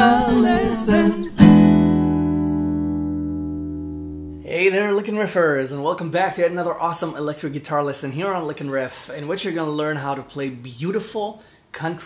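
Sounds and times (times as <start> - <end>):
guitar chord ringing: 0.0 - 4.4.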